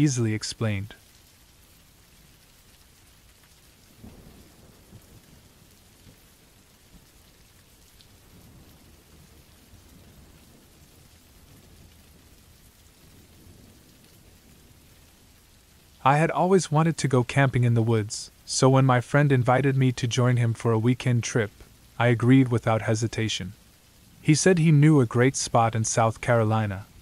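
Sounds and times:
rain patter: 0.0s - 27.0s
low thunder rumble: 3.9s - 6.3s, 8.2s - 15.0s.

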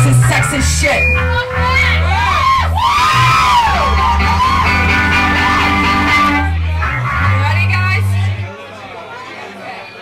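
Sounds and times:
live band playing loudly: 0.0s - 8.4s.

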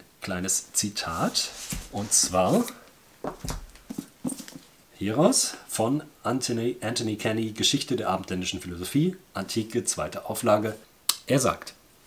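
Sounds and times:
book being handled: 1.1s - 4.7s.

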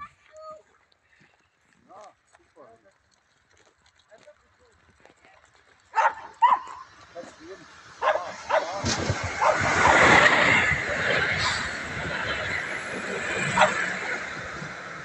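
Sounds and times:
electric train approaching: 6.4s - 15.0s.

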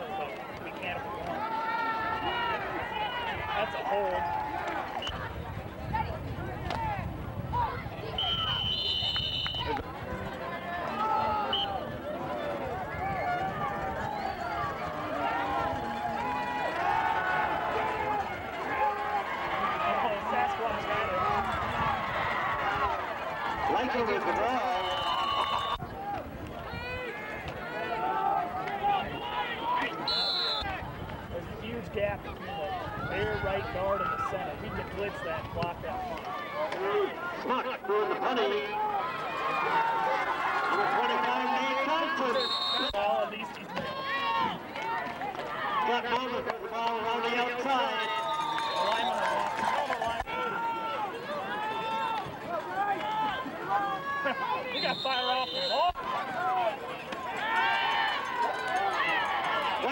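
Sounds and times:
crowd talking and shouting: 0.0s - 59.9s
referee's whistle blasts: 8.2s - 9.8s, 11.4s - 11.8s, 24.7s - 25.8s, 29.1s - 30.7s, 42.2s - 43.0s, 54.6s - 56.0s.

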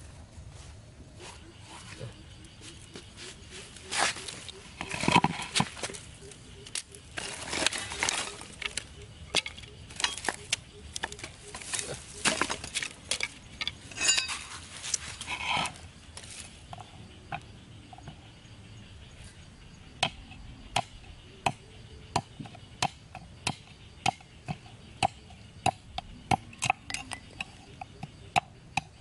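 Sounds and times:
bamboo sticks knocking together: 3.8s - 15.1s.

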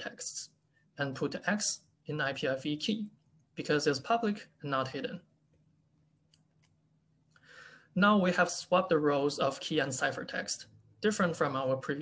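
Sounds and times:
person speaking: 0.0s - 6.9s, 7.6s - 12.0s.

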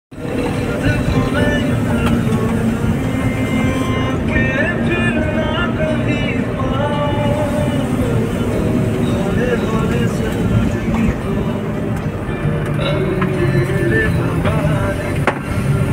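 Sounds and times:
song playing: 0.1s - 15.9s
vehicle road and engine noise: 0.1s - 15.9s.

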